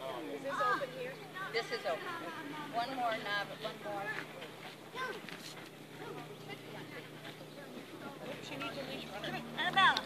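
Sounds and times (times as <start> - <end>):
faint voices calling: 0.0 - 10.0.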